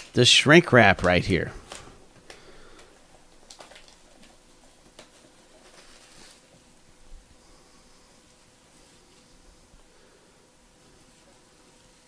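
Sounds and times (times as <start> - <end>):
plastic shrink wrap crinkling: 0.0 - 6.5.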